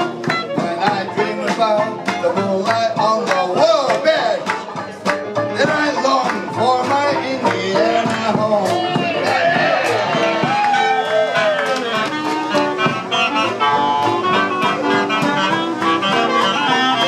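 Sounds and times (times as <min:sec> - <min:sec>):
man singing: 0:00.0 - 0:10.0
jazz band playing: 0:00.0 - 0:17.0.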